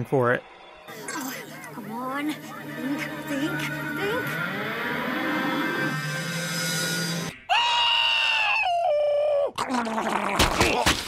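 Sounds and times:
cartoon soundtrack music: 0.9 - 7.3
high-pitched scream: 3.6 - 9.2.

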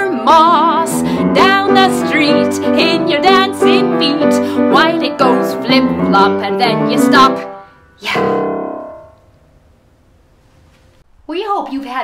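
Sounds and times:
piano chord ringing: 0.6 - 10.3
faint background noise: 7.4 - 12.0.

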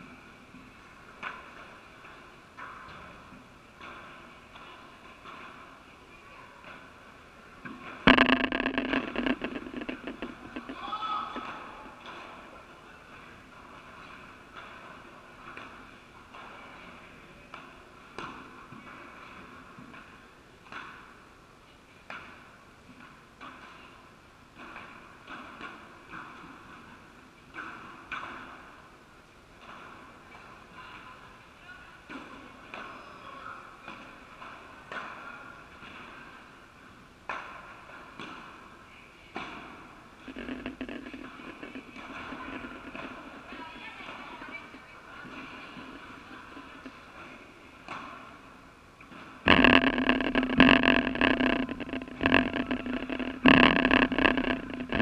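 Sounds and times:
padel balls struck by rackets: 7.7 - 12.2, 39.4 - 43.6, 49.1 - 55.0
indistinct voices: 8.1 - 12.0, 40.3 - 46.9, 49.5 - 55.0.

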